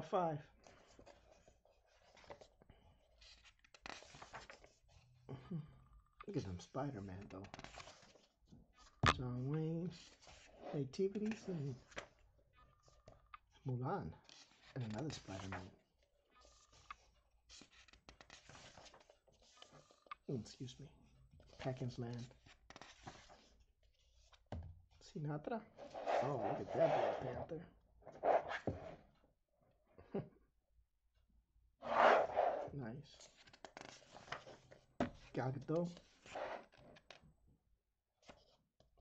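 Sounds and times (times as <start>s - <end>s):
paper page being turned: 0.8s - 2.5s, 3.1s - 5.0s, 7.4s - 9.0s, 16.4s - 20.1s, 21.5s - 24.3s, 25.8s - 27.4s, 31.8s - 34.8s, 36.0s - 37.2s.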